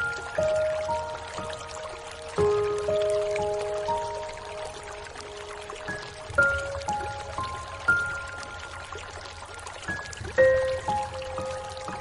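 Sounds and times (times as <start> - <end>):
rain hissing: 0.0 - 12.0
slow soft piano music: 0.0 - 12.0.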